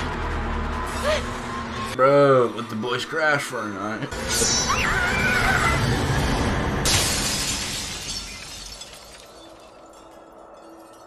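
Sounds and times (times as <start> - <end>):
woman screaming: 4.6 - 5.9
window glass shattering: 6.2 - 11.0.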